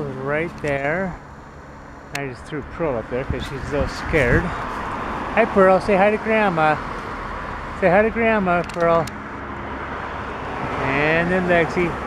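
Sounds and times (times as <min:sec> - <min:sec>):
passing car rumble: 0:00.0 - 0:12.0.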